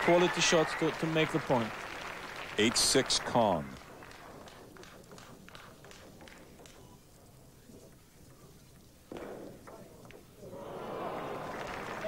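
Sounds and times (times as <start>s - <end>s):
crowd applauding: 0.0s - 4.6s, 10.5s - 12.0s
table tennis ball clicking: 3.7s - 7.4s.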